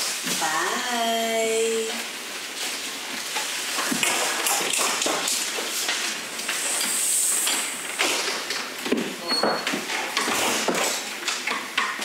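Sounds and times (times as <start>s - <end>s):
brief hiss: 6.5s - 7.8s.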